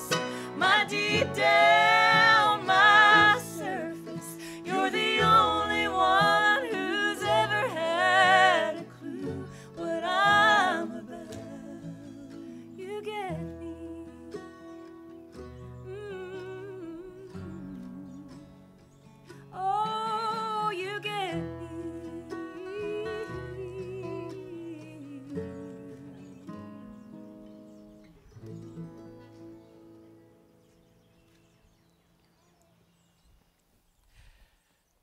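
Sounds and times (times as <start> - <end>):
woman singing: 0.0 - 14.8, 15.7 - 18.5, 19.4 - 27.0
bluegrass band playing: 0.0 - 15.9.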